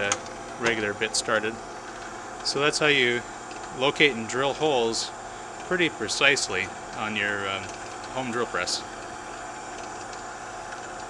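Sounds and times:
drill press motor humming: 0.0s - 11.0s.

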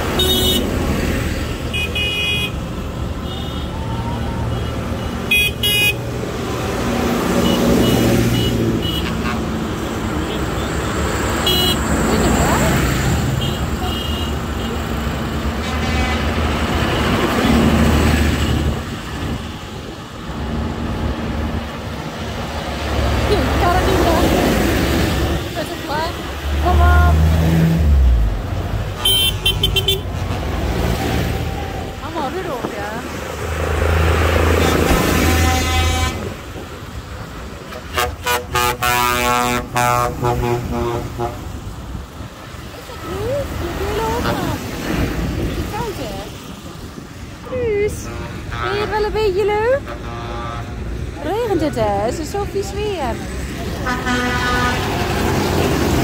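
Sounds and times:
tractor diesel engines: 0.0s - 56.0s
horn blasts: 29.0s - 30.4s, 34.6s - 36.4s, 37.7s - 41.5s, 53.8s - 55.1s.

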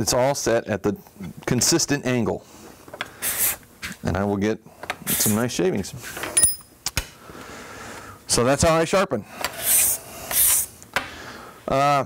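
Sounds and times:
metallic ring of steel tools: 6.4s - 6.7s.

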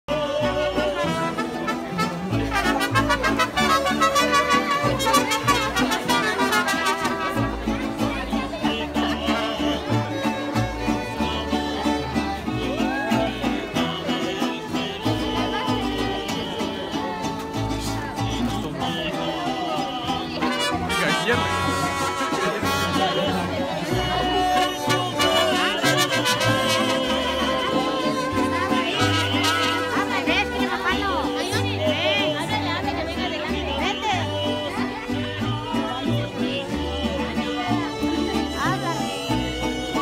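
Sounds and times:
bass line: 0.1s - 40.0s
string band music: 0.1s - 40.0s.

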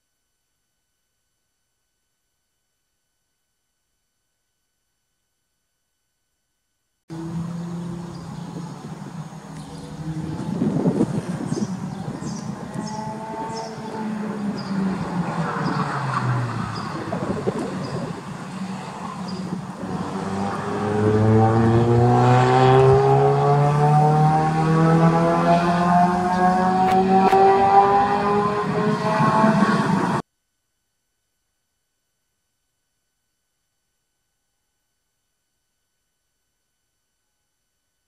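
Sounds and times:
sports car engine revving: 7.1s - 30.2s.

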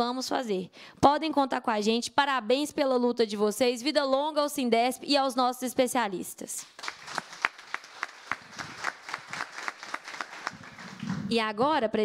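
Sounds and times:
audience applauding: 6.6s - 11.3s
sharp hand claps: 6.6s - 11.3s.

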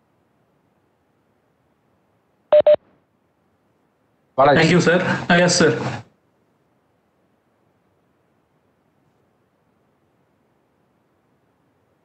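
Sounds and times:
short electronic beeps: 2.5s - 2.8s.

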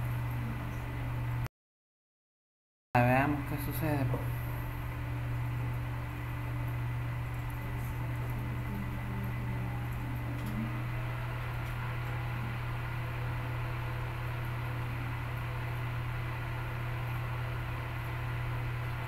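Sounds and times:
low machine hum: 0.0s - 1.5s, 3.0s - 19.0s.

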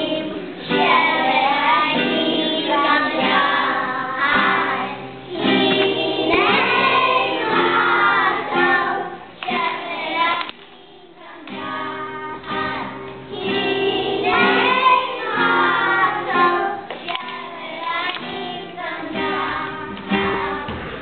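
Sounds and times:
acoustic guitar: 0.0s - 21.0s
children singing together: 0.0s - 21.0s.

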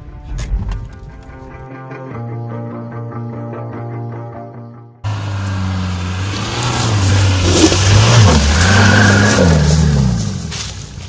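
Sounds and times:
car engine revving past: 5.1s - 10.8s
tyres hissing on dirt: 5.1s - 11.0s.

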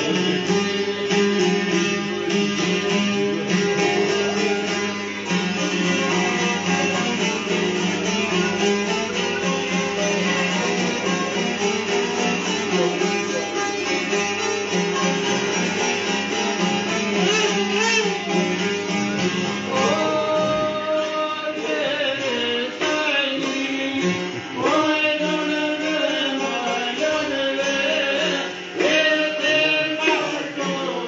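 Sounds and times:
folk tune on plucked lutes: 0.0s - 31.0s
person singing: 19.6s - 31.0s.

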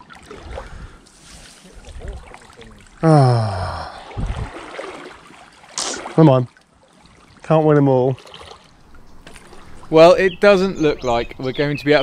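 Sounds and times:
river water running and sloshing: 0.0s - 11.2s.

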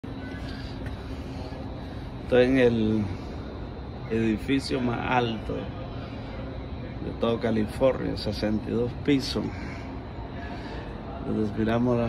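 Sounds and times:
faint distant voices: 0.0s - 12.0s
steady background hum: 0.0s - 12.0s.

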